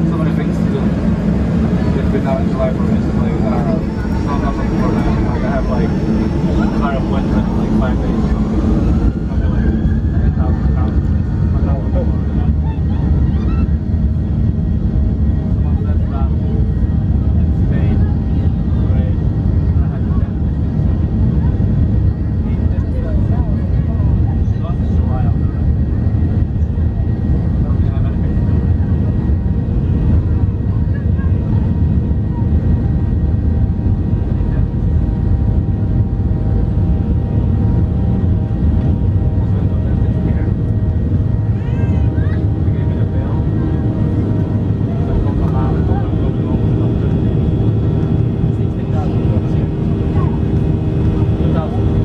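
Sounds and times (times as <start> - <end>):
jet engine whine: 0.0 - 52.0
jet engines and wheels rumbling: 0.0 - 52.0.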